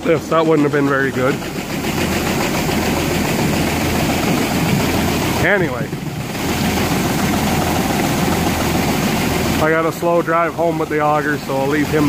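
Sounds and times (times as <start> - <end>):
grain auger running: 0.0 - 12.0
grain pouring into hopper: 0.0 - 12.0
tractor engine running: 0.0 - 12.0.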